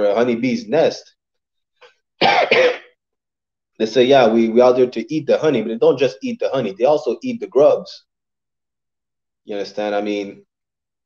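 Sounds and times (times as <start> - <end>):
man coughing: 2.2 - 3.0.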